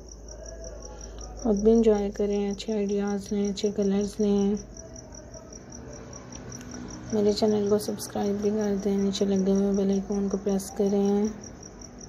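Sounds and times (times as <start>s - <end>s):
insect chirping: 0.0s - 12.0s.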